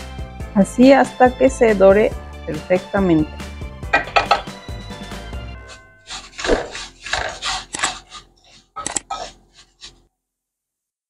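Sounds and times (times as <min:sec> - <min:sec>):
background music: 0:00.0 - 0:10.0
spoon scraping rice in pan: 0:05.6 - 0:10.0.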